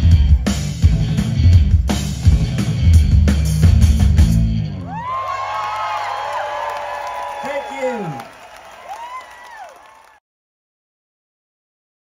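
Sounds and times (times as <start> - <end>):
rock song: 0.0 - 5.0
crowd cheering and whooping: 4.7 - 10.2.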